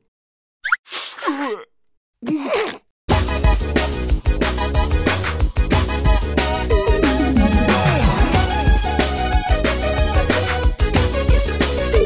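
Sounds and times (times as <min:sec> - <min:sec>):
upbeat music: 0:06.2 - 0:09.9.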